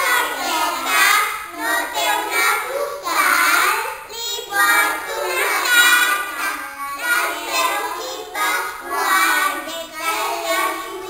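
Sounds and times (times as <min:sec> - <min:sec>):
young children singing together: 0:00.0 - 0:11.0.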